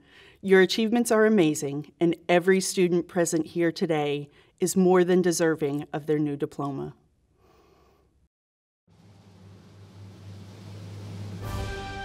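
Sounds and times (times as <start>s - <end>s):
low steady hum: 8.9s - 11.5s
background music: 9.3s - 12.0s.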